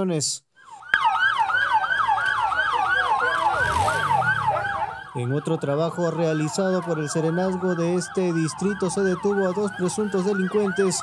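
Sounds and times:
siren fast yelp: 0:00.6 - 0:11.0.

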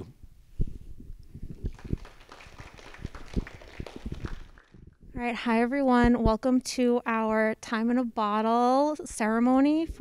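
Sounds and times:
sparse applause: 0:01.6 - 0:04.9.

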